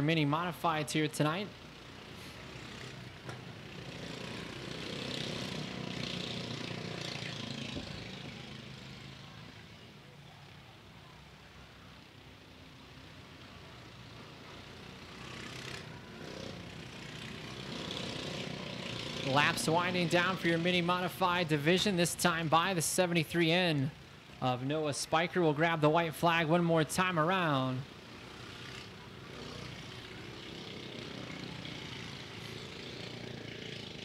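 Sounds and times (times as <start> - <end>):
race car engines passing: 0.0 - 34.0.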